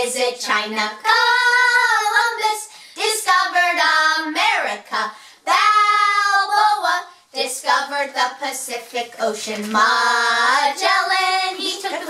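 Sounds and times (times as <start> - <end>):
woman and children singing: 0.0 - 12.0.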